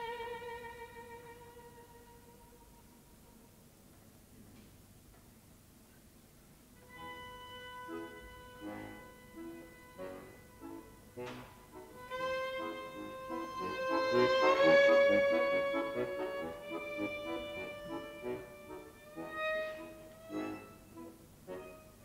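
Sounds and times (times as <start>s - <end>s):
violin playing: 0.0s - 3.4s, 6.8s - 22.0s
button accordion chords: 6.8s - 22.0s.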